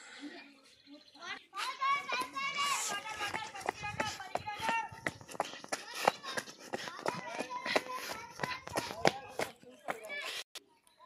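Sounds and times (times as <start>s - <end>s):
young voices shouting: 1.6s - 5.1s.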